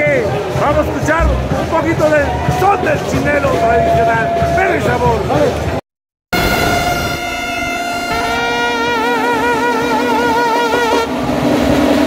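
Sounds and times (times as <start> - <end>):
brass band trumpets holding notes: 2.0 - 5.2, 6.4 - 11.2.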